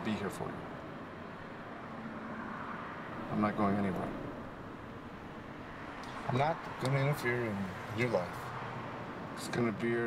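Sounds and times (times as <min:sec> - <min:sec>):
street traffic hum from inside car: 0:00.0 - 0:10.0.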